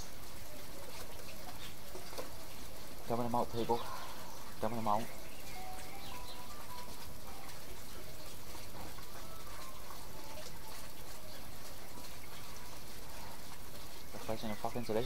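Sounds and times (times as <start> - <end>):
outdoor background hiss: 0.0 - 15.0.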